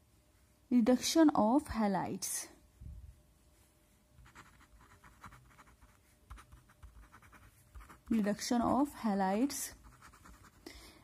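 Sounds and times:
pen scratching on paper: 4.2s - 8.9s, 9.8s - 10.6s.

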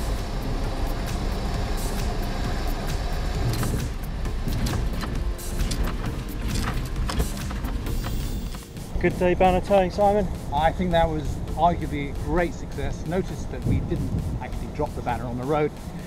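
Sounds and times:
background music: 0.0s - 16.0s
small plane engine and propeller: 0.0s - 16.0s.

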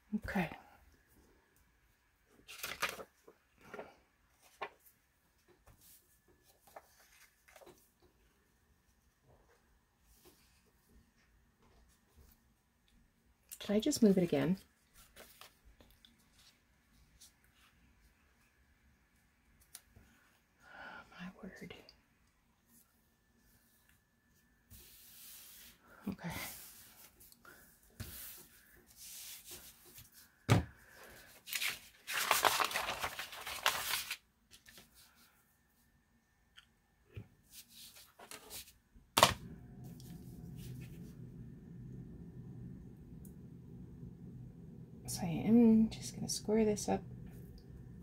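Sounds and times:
paper rustling: 2.4s - 5.0s, 5.6s - 7.9s, 31.0s - 35.4s.

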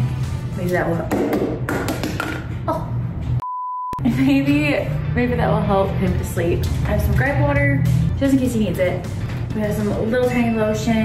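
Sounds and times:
background music: 0.0s - 3.4s, 4.0s - 11.0s
pure beep tone: 3.4s - 4.0s
woman speaking: 4.0s - 11.0s.

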